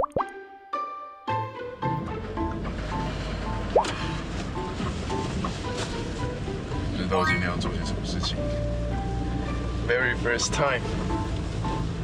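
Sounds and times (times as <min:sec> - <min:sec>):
bubbly plops: 0:00.0 - 0:00.4
background music of repeating notes: 0:00.0 - 0:04.8, 0:06.8 - 0:12.0
short chime-like tones: 0:07.2 - 0:07.6.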